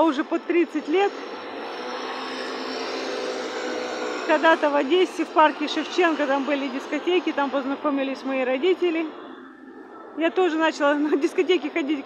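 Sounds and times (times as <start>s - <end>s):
motor scooter passing: 0.0s - 12.0s
road traffic noise: 0.0s - 12.0s.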